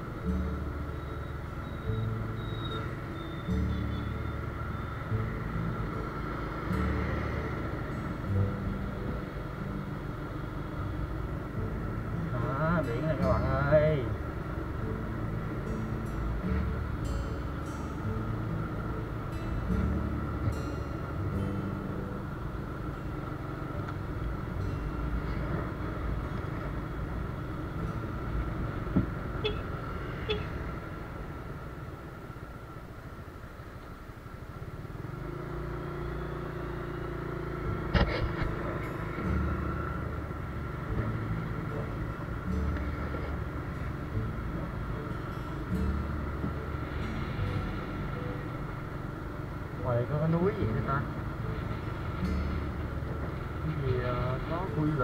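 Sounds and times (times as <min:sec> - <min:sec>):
motorbike engine hum: 0:00.0 - 0:55.0
road noise: 0:00.0 - 0:55.0.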